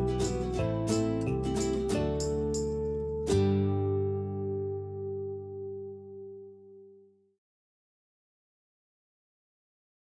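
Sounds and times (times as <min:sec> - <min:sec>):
acoustic guitar music: 0:00.0 - 0:07.0.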